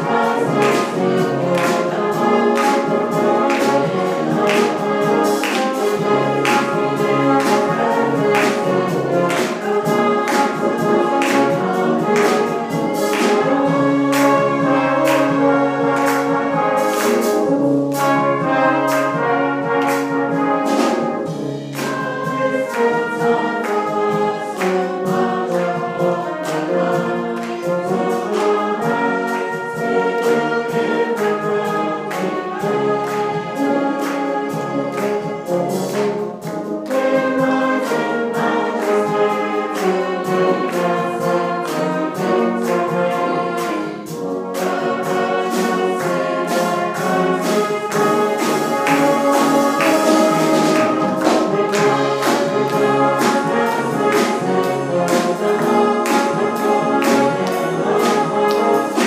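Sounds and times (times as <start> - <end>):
brass band playing a hymn: 0.0 - 59.0
congregation singing: 0.0 - 59.0.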